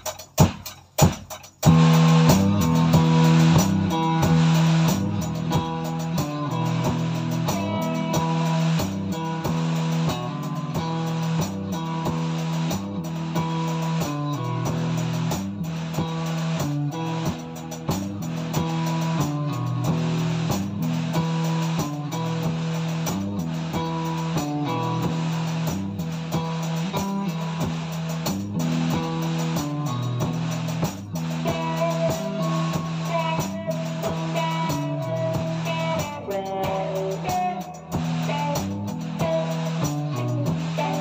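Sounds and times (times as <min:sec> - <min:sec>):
drum and cymbal hits: 0:00.0 - 0:41.0
guitar chords: 0:00.0 - 0:41.0
rock band playing: 0:00.0 - 0:41.0.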